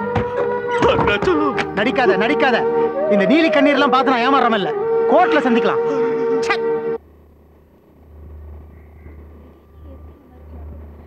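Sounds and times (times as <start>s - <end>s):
low rumbling hum: 4.8s - 11.0s.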